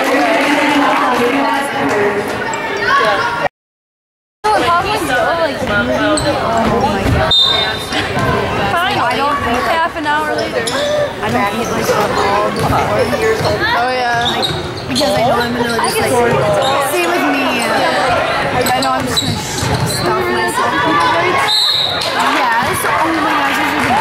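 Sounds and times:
people talking and calling out: 0.0 - 3.5, 4.4 - 24.0
shoe squeaks: 7.3 - 8.0, 11.6 - 16.8, 18.6 - 20.2.

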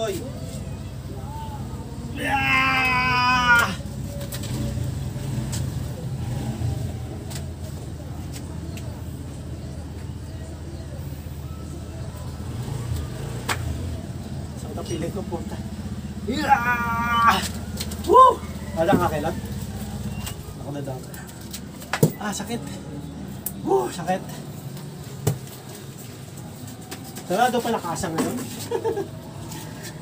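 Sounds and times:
loud shout: 1.4 - 3.8, 16.3 - 18.5
man yelling: 2.1 - 3.8, 16.3 - 17.5.

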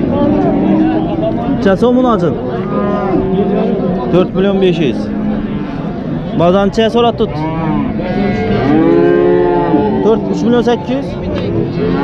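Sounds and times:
cattle mooing: 0.1 - 1.2, 2.5 - 6.2, 7.2 - 12.0.

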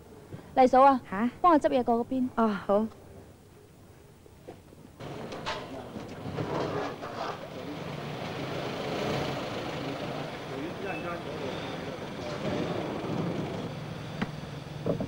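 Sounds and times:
vehicle engine running: 5.0 - 15.0.

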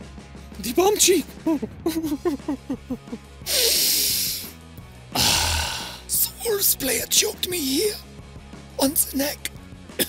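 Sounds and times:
quiet background music: 0.0 - 10.0
man exhaling heavily: 5.2 - 6.1.

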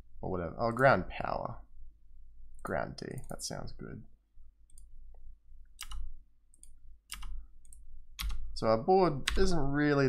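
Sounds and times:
computer mouse clicking: 4.7 - 8.5.

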